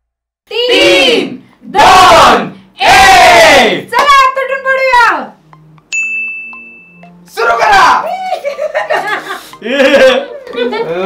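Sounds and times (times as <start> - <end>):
group shouting in unison: 0.5 - 3.8.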